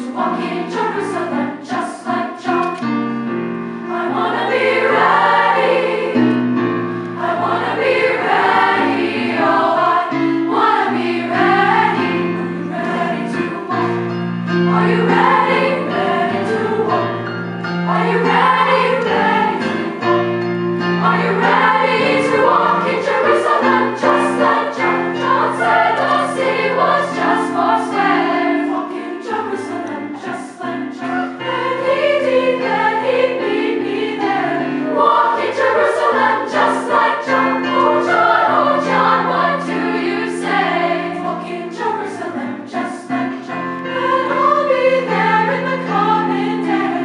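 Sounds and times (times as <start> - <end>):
piano: 0.0 - 47.0
youth choir singing: 0.0 - 47.0.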